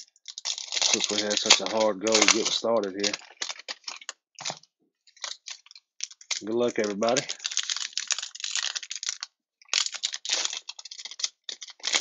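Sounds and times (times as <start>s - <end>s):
wrapper crinkling and tearing: 0.0s - 12.0s.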